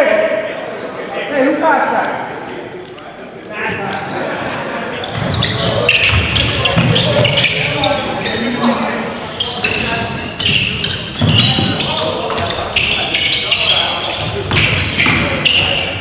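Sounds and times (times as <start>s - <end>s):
players calling out: 3.6s - 16.0s
basketball bouncing on wooden court: 5.1s - 7.6s, 10.4s - 12.9s, 13.7s - 15.6s.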